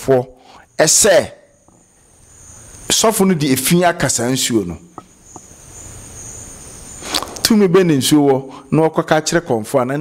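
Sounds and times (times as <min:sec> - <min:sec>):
insects trilling: 0:00.0 - 0:10.0
low background hiss: 0:00.0 - 0:10.0.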